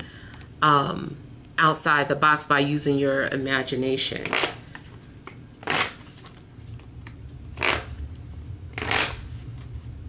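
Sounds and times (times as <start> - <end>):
low steady hum: 0.0 - 10.0
cards being shuffled: 5.6 - 8.0, 8.8 - 9.8.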